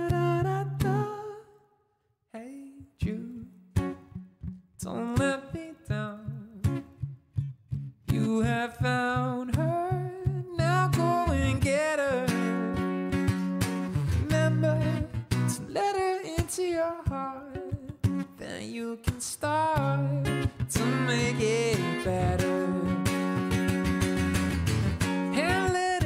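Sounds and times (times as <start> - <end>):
man singing: 0.0 - 1.6, 2.3 - 3.6, 4.8 - 6.8, 8.1 - 13.2, 13.8 - 23.6, 25.3 - 26.0
acoustic guitar strumming: 3.7 - 5.4, 8.1 - 26.0.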